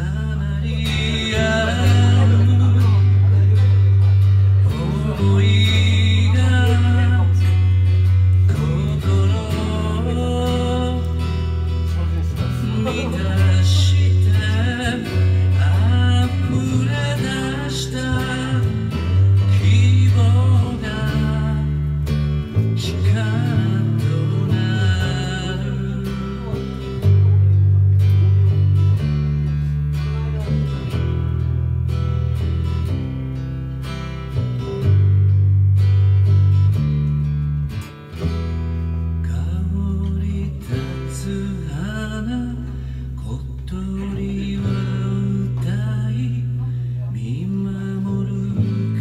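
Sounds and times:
acoustic guitar strumming: 0:00.0 - 0:49.0
bass guitar low notes: 0:00.0 - 0:49.0.

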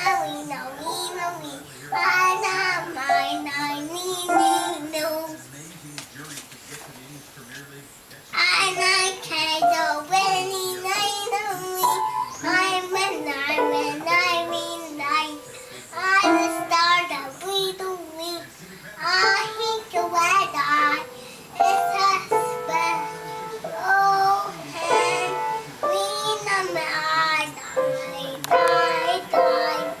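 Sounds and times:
piano playing: 0:00.0 - 0:05.2, 0:08.9 - 0:17.4, 0:19.1 - 0:30.0
girl singing: 0:00.0 - 0:05.4, 0:08.4 - 0:30.0.

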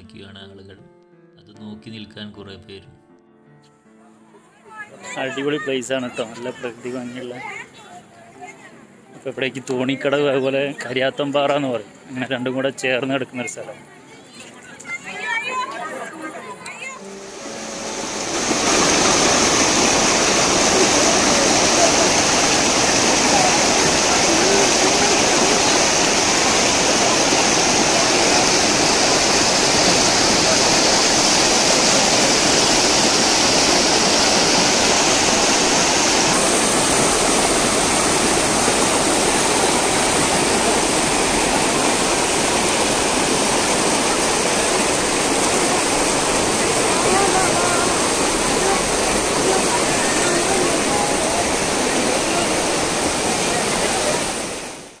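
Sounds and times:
river rushing over rocks: 0:17.0 - 0:55.0.

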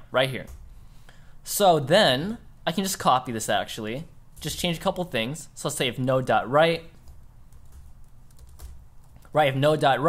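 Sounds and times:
computer keyboard typing: 0:06.9 - 0:09.3.

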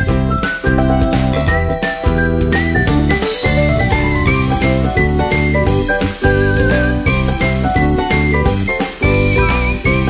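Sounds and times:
bright tinkling instrumental music: 0:00.0 - 0:10.0.

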